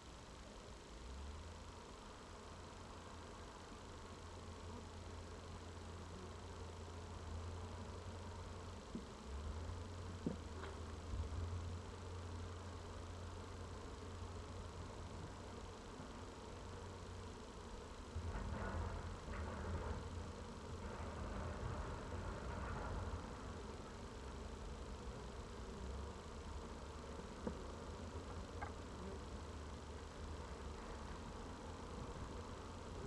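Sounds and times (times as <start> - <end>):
low outdoor rumble: 0.0 - 33.0.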